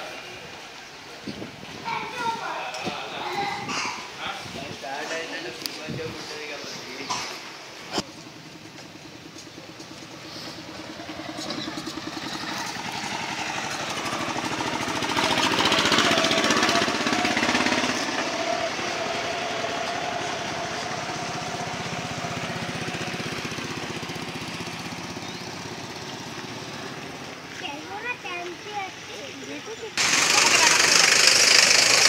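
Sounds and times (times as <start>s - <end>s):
motorcycle engine running: 7.9s - 32.0s.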